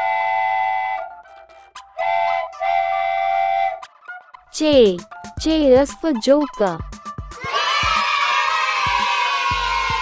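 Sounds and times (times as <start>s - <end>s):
steam train chime whistle: 0.0s - 1.3s, 2.0s - 3.9s.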